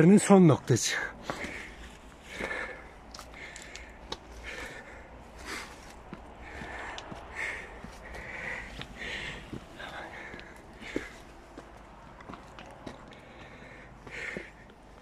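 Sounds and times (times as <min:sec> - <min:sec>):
person breathing heavily: 0:00.9 - 0:15.0
footsteps on stony dirt path: 0:01.0 - 0:15.0.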